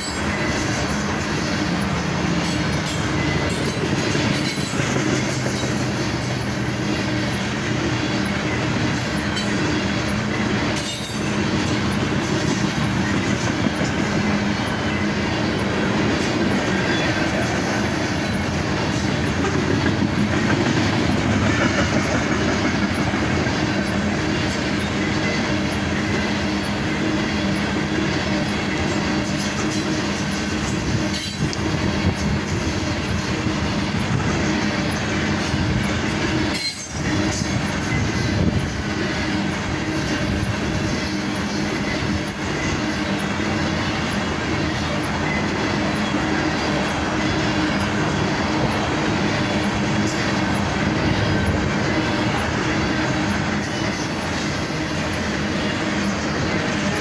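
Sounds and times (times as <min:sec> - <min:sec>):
freight train wheels rattling on rails: 0:00.0 - 0:57.0.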